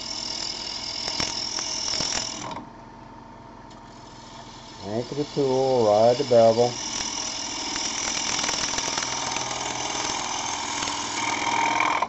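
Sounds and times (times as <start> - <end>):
lathe motor hum: 4.1 - 12.0.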